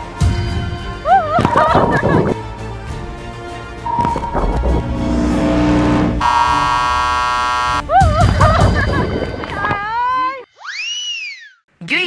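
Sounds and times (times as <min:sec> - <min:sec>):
game show music: 0:01.8 - 0:09.2
electronic buzzer: 0:03.9 - 0:07.8.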